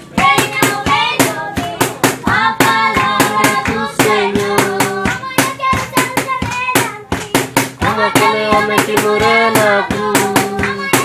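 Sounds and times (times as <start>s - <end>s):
children singing: 0.0s - 11.0s
hands clapping: 0.1s - 11.0s.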